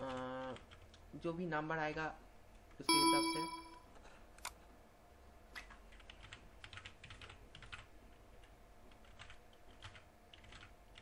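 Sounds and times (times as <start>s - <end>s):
faint typing on a keyboard: 0.0s - 1.4s, 5.5s - 11.0s.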